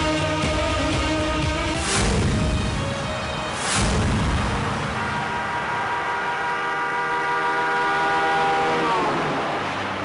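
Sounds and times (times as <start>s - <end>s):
horn-like chord sliding downward: 3.4s - 10.0s.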